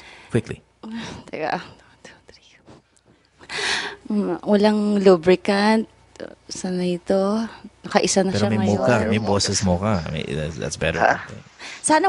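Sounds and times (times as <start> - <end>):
person whispering: 8.4 - 9.6.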